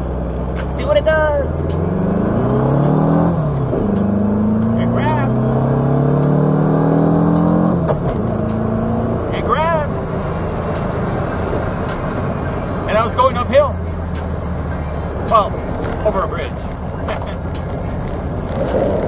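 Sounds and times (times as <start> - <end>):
car engine accelerating: 0.0 - 19.0.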